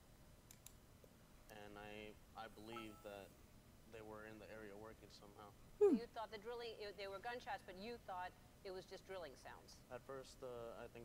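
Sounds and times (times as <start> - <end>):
faint clicks: 0.4 - 0.8.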